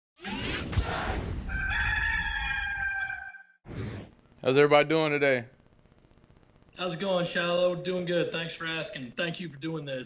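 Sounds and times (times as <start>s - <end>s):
rooster crowing: 1.5s - 3.6s.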